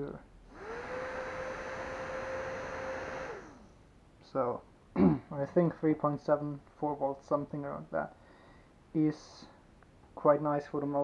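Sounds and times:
small fan motor whining: 0:00.4 - 0:03.8.

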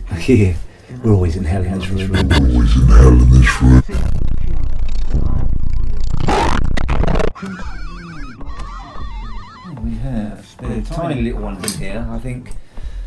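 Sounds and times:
dense low rumble: 0:01.7 - 0:07.3
warbling tone with wide vibrato: 0:02.0 - 0:09.6.

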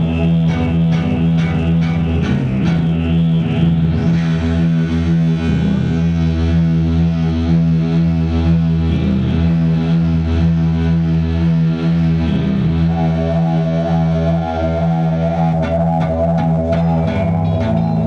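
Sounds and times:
distorted electric guitar drone: 0:00.0 - 0:18.0
heavy low bass: 0:00.0 - 0:18.0.

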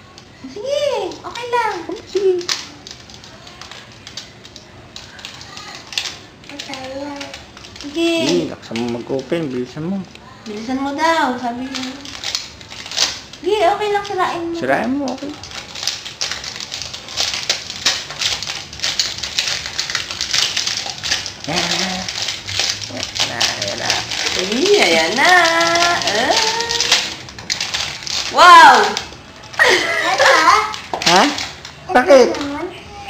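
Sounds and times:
toy and packaging clicks and rustles: 0:00.0 - 0:33.0.

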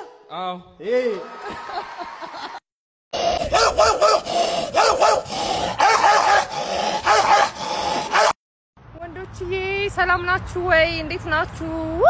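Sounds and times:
dog-like barks: 0:03.4 - 0:08.4.

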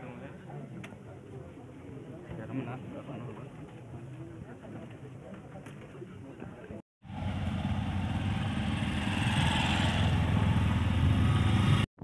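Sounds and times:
vehicle engine humming: 0:07.0 - 0:11.9.

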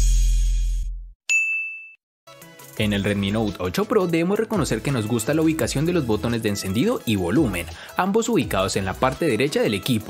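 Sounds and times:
high-pitched ding: 0:01.3 - 0:02.0.

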